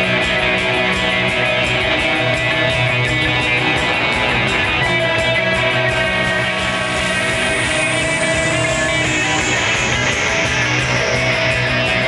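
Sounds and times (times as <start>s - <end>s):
droning electric guitars: 0.0s - 12.0s.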